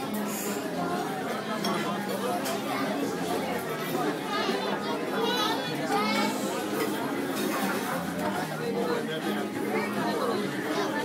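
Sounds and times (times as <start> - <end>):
chatter of many diners: 0.0 - 11.0.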